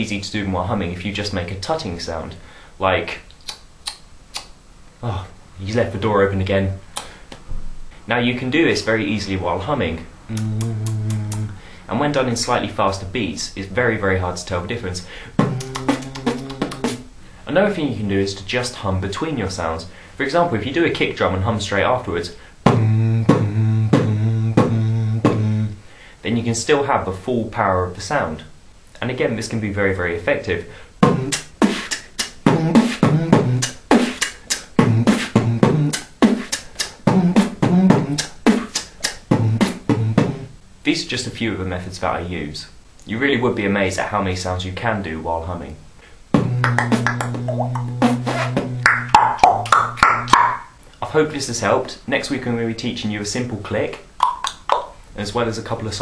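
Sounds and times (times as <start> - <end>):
tongue-click hi-hats: 3.2 - 4.6, 6.9 - 7.4, 10.3 - 11.6, 15.4 - 17.1, 31.0 - 40.5, 46.3 - 50.5
beatbox kick and snare: 6.9 - 7.5, 10.3 - 11.5, 15.4 - 17.1, 22.7 - 25.6, 31.0 - 40.5, 46.4 - 50.6, 54.2 - 55.0
beatbox nasal hum: 10.3 - 11.8, 15.0 - 17.2, 22.2 - 25.9, 30.6 - 40.6, 46.3 - 50.8, 54.2 - 55.0.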